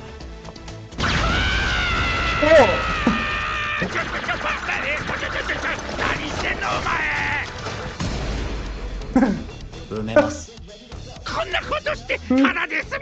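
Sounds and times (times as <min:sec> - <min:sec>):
dialogue: 0:02.4 - 0:13.0.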